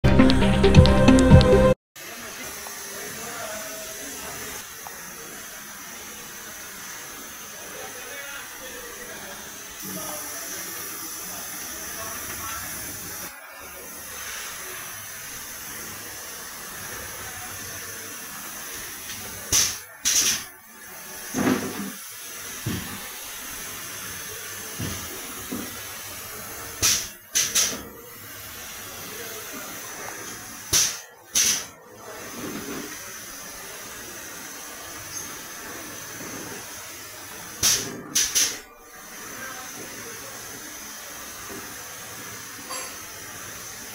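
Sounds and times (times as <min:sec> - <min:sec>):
capping machine hiss and whine: 0:00.2 - 0:43.9
pneumatic air blasts: 0:09.7 - 0:43.9.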